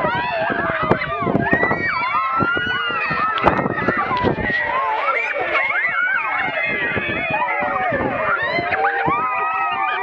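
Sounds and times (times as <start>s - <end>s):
children calling and chattering: 0.0s - 10.0s.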